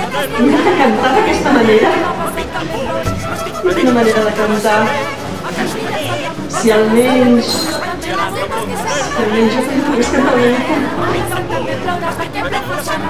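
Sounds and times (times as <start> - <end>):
chatter of voices: 0.0 - 13.0
person singing in drawn-out phrases: 0.0 - 13.0.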